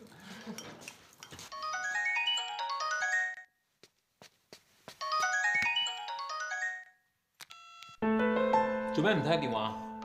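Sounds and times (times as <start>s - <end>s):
phone ringtone melody: 1.6s - 3.5s, 5.0s - 8.8s.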